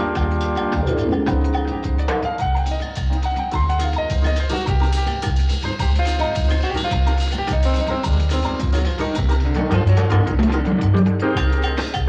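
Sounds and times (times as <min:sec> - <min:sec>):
samba record on a turntable: 0:00.0 - 0:12.0.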